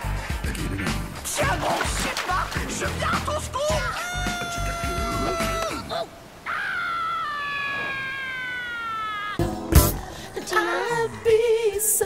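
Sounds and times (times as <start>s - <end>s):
cartoon voice screaming: 3.6s - 9.4s.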